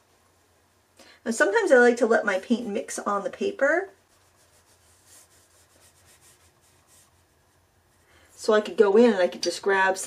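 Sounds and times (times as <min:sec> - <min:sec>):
brush rubbing on paper: 0:03.9 - 0:08.0.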